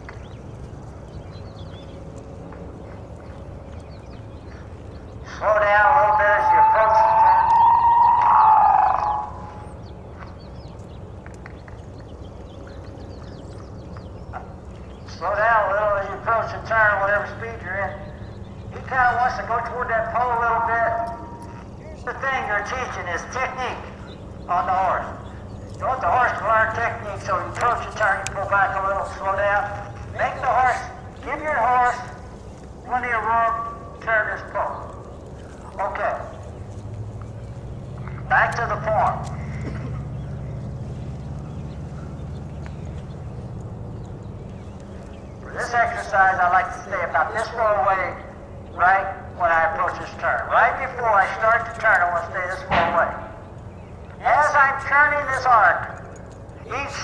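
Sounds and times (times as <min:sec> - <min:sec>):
horse hoofbeats on dirt: 0:00.0 - 0:06.2, 0:09.2 - 0:45.6
low steady hum: 0:00.0 - 0:57.0
small birds twittering: 0:00.0 - 0:57.0
man's voice: 0:05.3 - 0:07.4, 0:24.5 - 0:32.2, 0:32.9 - 0:34.9, 0:35.7 - 0:36.4, 0:38.3 - 0:39.9, 0:45.4 - 0:53.3, 0:54.2 - 0:55.9, 0:56.7 - 0:57.0.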